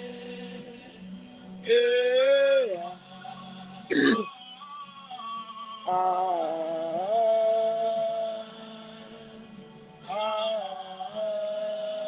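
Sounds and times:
throat clearing: 3.9s - 4.3s.

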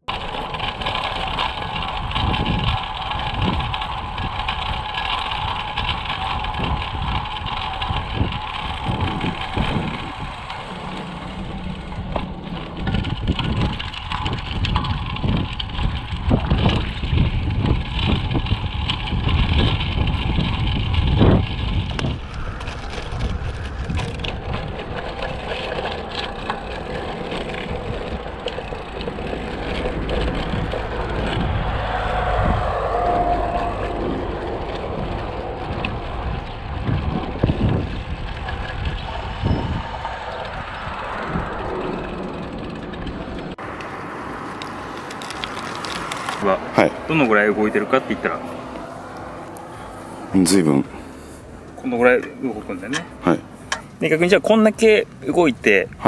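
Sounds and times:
bicycle tyre rumble: 0.0s - 56.0s
wind on microphone: 0.1s - 51.8s.

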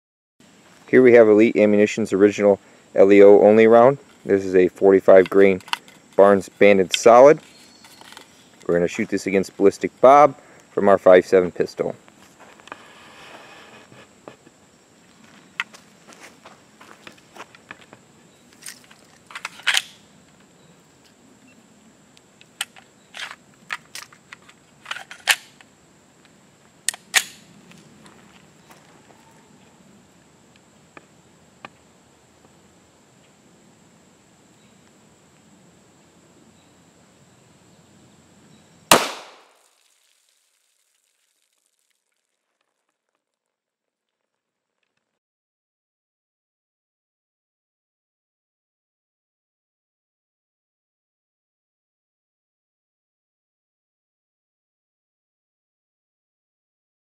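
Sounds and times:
pistol shot: 38.9s - 39.6s.

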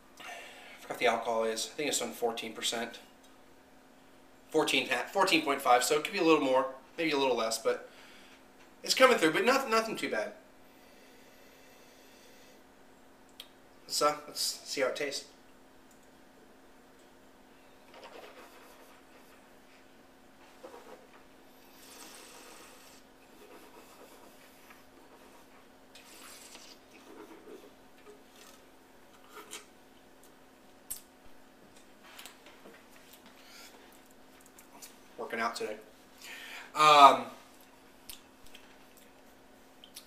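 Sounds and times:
low steady hum: 0.0s - 40.0s
sipping and swallowing: 25.9s - 27.4s.

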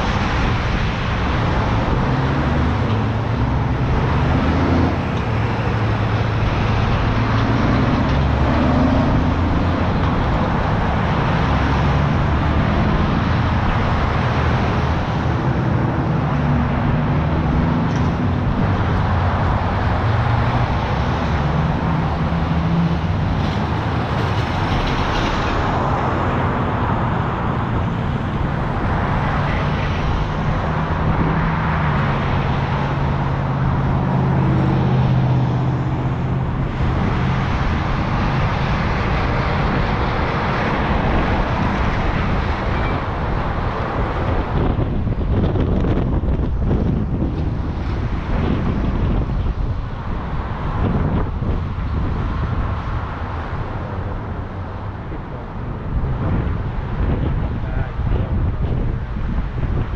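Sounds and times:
low engine hum: 0.0s - 59.9s
vehicles passing: 0.0s - 59.9s.

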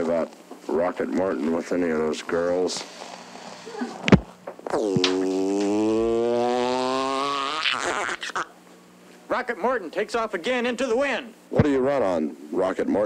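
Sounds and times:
man making buzzing mouth noise: 3.7s - 8.6s.

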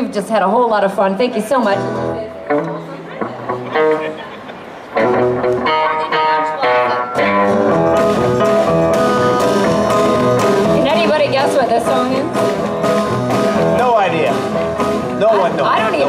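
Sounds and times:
keyboard: 1.2s - 16.0s
acoustic guitar: 1.3s - 16.0s
electric guitar: 1.4s - 16.0s
drums: 7.1s - 16.0s.

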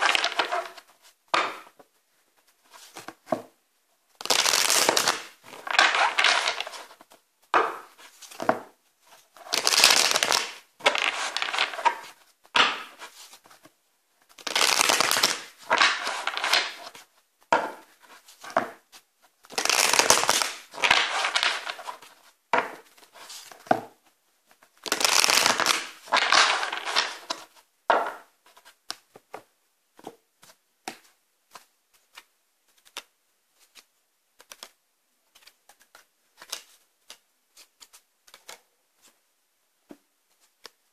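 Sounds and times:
cards being shuffled: 0.0s - 1.8s, 4.2s - 13.7s, 14.3s - 17.1s, 19.4s - 23.7s, 24.8s - 27.6s, 30.4s - 39.2s.

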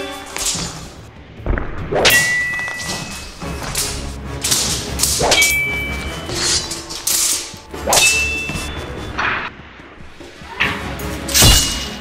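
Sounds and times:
metal swords clanging: 0.0s - 1.0s, 2.0s - 9.4s, 10.6s - 12.0s
blades swishing: 1.9s - 9.1s.

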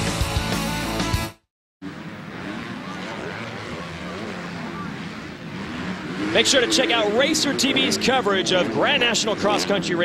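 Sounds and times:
distant motocross bikes revving: 1.8s - 10.0s.

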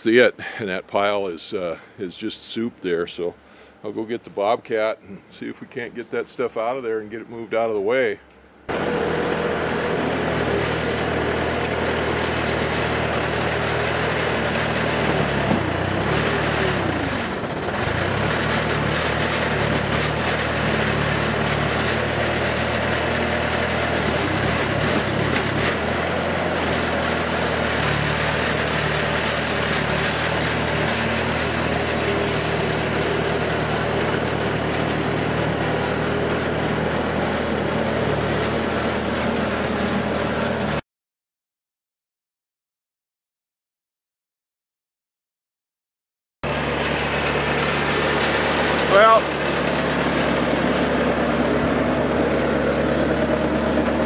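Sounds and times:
diesel engine running: 8.6s - 40.8s, 46.4s - 54.0s.

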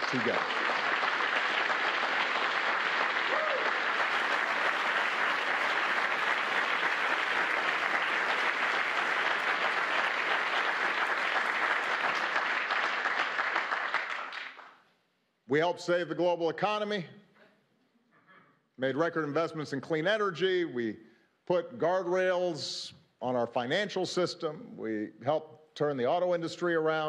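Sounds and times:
audience applauding: 0.0s - 14.8s.

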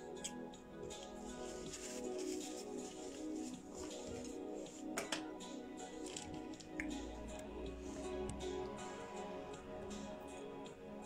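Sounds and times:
background music sustained tones: 0.0s - 11.0s.

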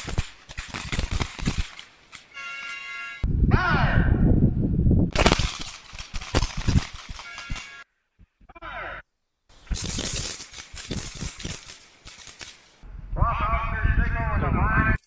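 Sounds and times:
handgun shots: 5.1s - 7.8s.

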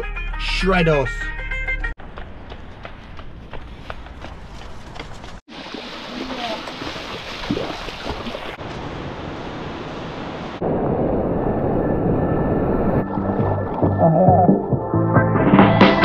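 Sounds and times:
music: 0.0s - 2.0s, 13.0s - 16.0s.

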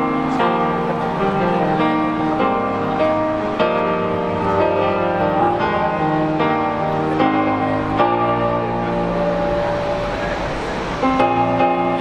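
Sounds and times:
city road traffic: 0.0s - 12.0s.

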